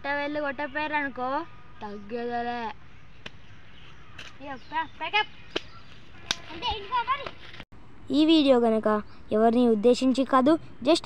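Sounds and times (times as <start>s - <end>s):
sharp cracks: 3.2s - 3.4s
children's voices: 6.2s - 7.4s.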